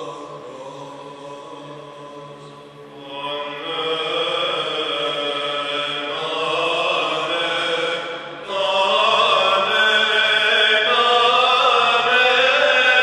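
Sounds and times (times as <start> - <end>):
low sung drone: 0.0 - 13.0
male chanters singing melody: 0.0 - 13.0.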